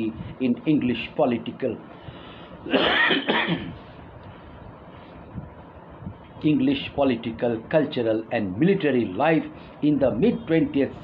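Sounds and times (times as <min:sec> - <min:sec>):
man coughing: 0:02.7 - 0:03.8.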